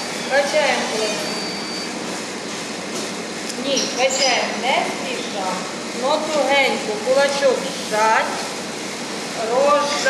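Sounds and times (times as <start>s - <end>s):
woman speaking: 0.3s - 1.4s, 3.6s - 8.5s, 9.4s - 10.0s.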